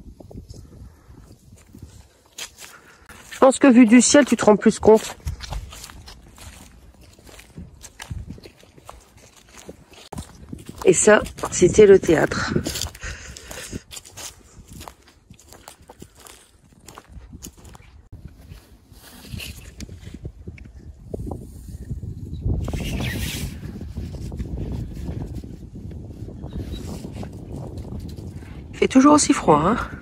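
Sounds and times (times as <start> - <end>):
wind buffeting microphone: 0.0 - 3.4, 4.8 - 30.0
footsteps crunching dry leaves: 1.4 - 19.8.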